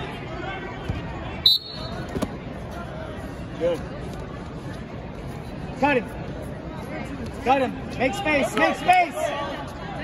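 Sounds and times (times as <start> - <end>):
crowd chatter: 0.0 - 10.0
referee's whistle blast: 1.5 - 2.0.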